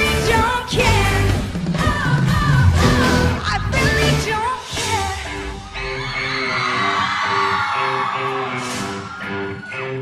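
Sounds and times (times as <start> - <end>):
live pop-rock band playing: 0.0 - 10.0.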